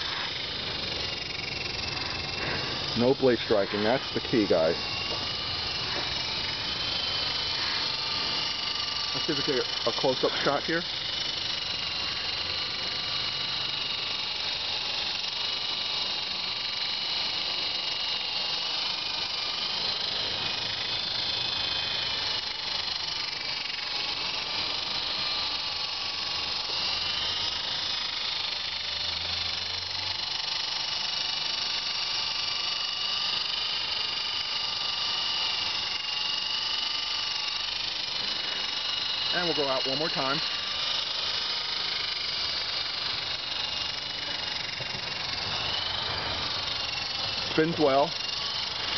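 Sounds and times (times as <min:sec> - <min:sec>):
rc helicopter motor whine: 0:00.0 - 0:48.9.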